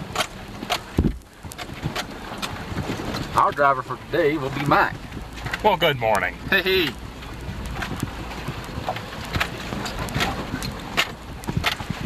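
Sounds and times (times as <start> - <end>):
knocks and rattles from bumps: 0.0 - 12.0
vehicle rumbling on dirt trail: 0.0 - 12.0.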